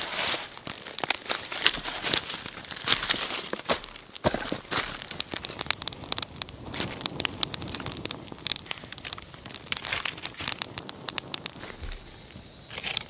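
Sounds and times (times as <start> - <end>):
twig fire crackling: 0.0 - 13.0.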